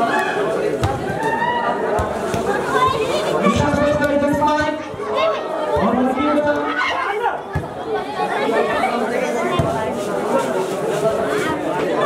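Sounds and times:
spectators chattering and shouting: 0:00.0 - 0:12.0.

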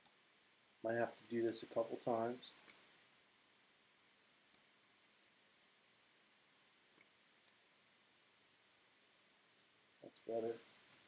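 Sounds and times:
computer mouse clicks: 0:02.6 - 0:03.2, 0:06.9 - 0:07.9.

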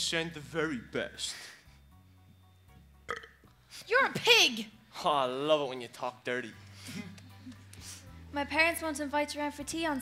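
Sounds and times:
person belching: 0:03.1 - 0:03.4.

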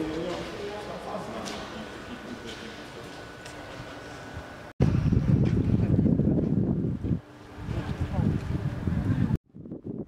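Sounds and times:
wind buffeting microphone: 0:04.4 - 0:10.0.

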